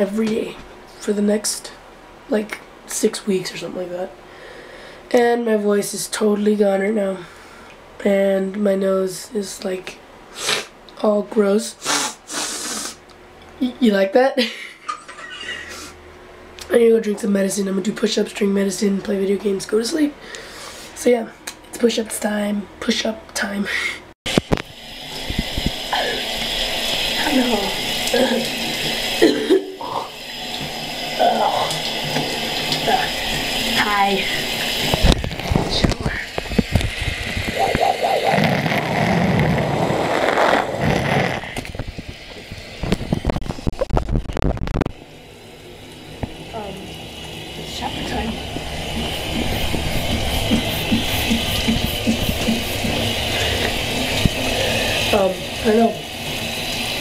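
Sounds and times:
shower spray running: 11.8s - 13.0s, 24.3s - 43.9s, 44.9s - 57.0s
person laughing: 14.4s - 16.0s.

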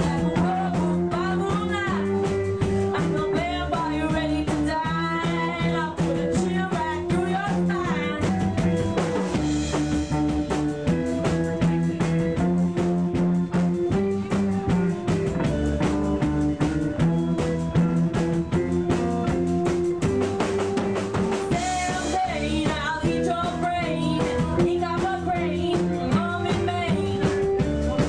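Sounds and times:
bass notes: 0.0s - 28.0s
drum kit beat: 0.0s - 28.0s
sustained guitar chords: 5.0s - 28.0s.

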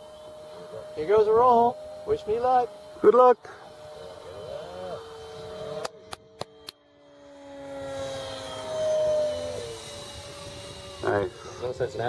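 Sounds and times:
electric ducted fan whining: 0.0s - 12.0s
sharp clicks: 5.8s - 6.8s.

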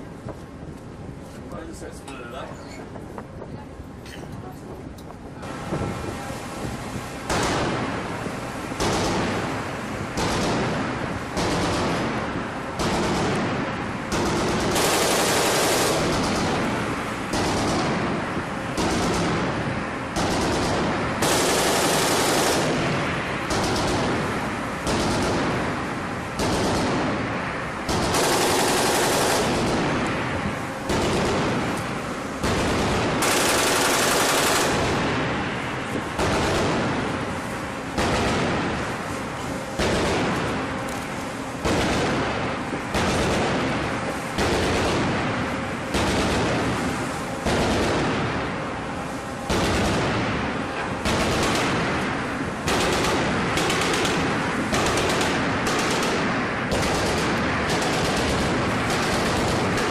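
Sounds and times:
chain gun firing automatic bursts: 11.4s - 12.2s, 14.1s - 18.0s, 18.8s - 19.4s, 20.2s - 22.8s, 23.5s - 24.2s, 24.8s - 25.6s, 26.4s - 27.1s, 27.9s - 29.9s, 32.4s - 35.0s, 52.7s - 59.9s.

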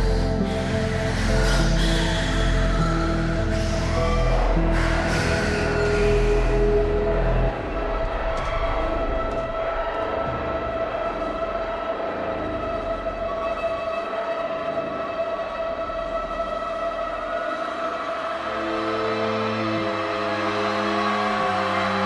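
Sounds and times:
crowd cheering and screaming: 17.2s - 22.0s.

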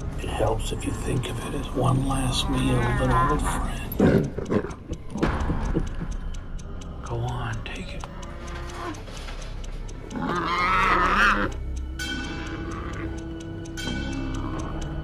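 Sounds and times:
regular ticking: 0.0s - 15.0s
tense horror score: 0.0s - 15.0s.

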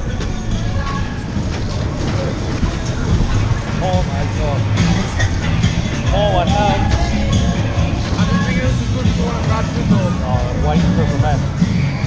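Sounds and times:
ride car wheels rumbling on rails: 0.0s - 12.0s.

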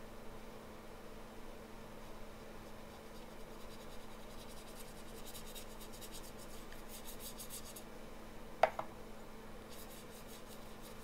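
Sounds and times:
brush strokes on wet paper: 2.6s - 7.8s, 9.7s - 11.0s.

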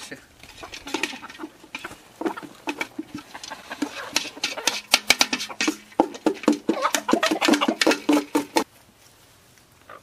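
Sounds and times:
chickens clucking: 0.0s - 8.7s.

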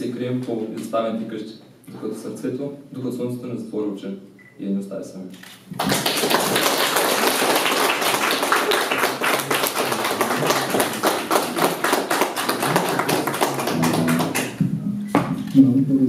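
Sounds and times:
audience applauding: 5.7s - 14.6s.

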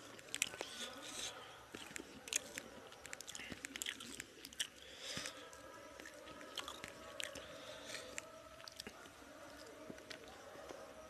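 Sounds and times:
wet chewing mouth sounds: 0.0s - 10.8s.

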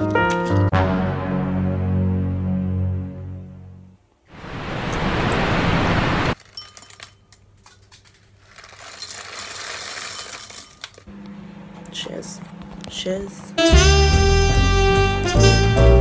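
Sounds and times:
music: 0.0s - 4.0s, 13.4s - 16.0s
loud even rushing noise: 4.3s - 6.4s
crinkly plastic packet: 6.4s - 11.1s
kitchen things clinking: 6.4s - 11.1s.

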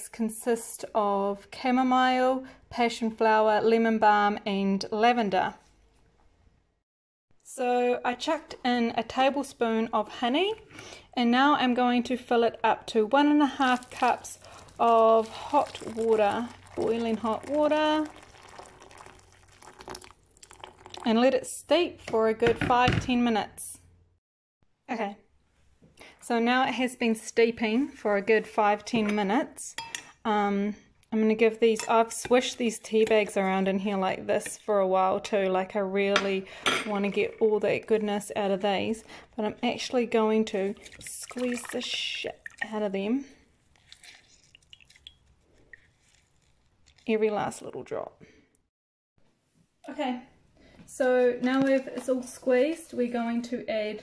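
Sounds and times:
wet squishing of tea bags: 13.5s - 21.1s, 40.7s - 42.8s, 43.5s - 47.6s
water pouring into jug: 13.5s - 21.2s, 40.6s - 42.8s, 43.6s - 47.1s
small drips: 13.6s - 21.2s, 40.6s - 47.2s.

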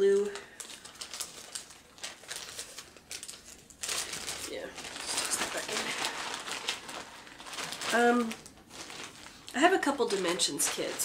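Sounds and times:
bag crinkling and rustling: 0.0s - 11.0s.

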